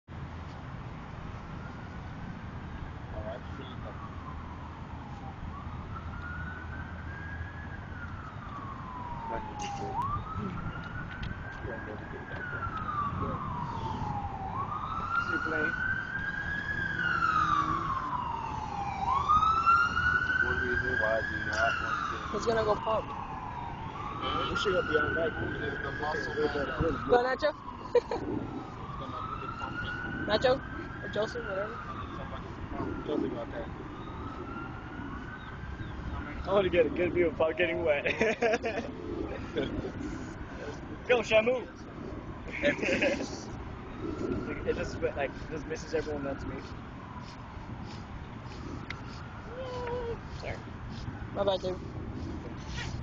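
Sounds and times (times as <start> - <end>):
emergency vehicle siren wailing: 0.8 - 53.0.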